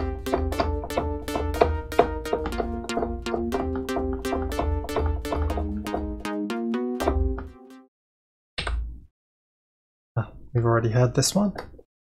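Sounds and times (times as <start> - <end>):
synthesizer chord stabs: 0.0 - 7.9.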